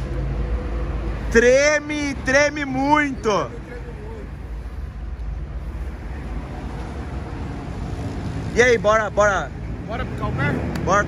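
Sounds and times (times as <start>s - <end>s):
low rumble of vehicle noise: 0.0s - 11.0s.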